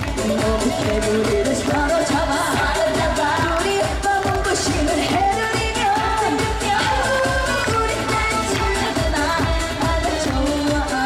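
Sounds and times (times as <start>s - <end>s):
band playing steady beat: 0.0s - 11.0s
woman singing into microphone: 0.0s - 11.0s.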